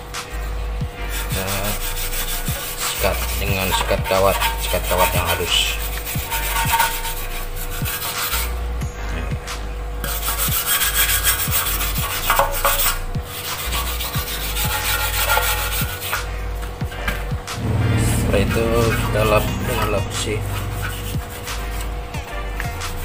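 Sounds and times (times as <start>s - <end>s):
wire brush scrubbing metal: 1.0s - 8.6s, 10.0s - 16.3s, 17.6s - 23.0s.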